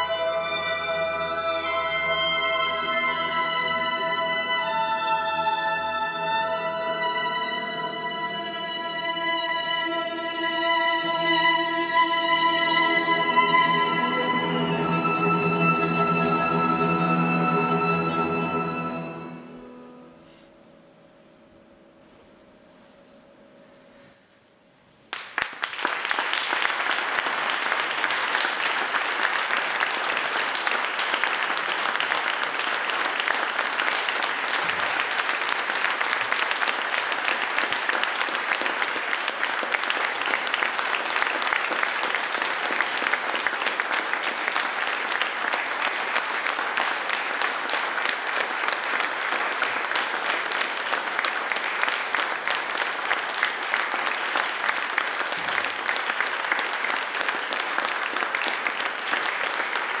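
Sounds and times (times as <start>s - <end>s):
audience applauding: 25.1s - 60.0s.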